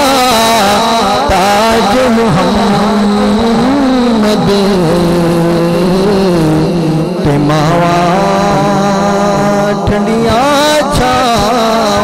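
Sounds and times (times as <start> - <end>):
man singing into a microphone: 0.0 - 12.0.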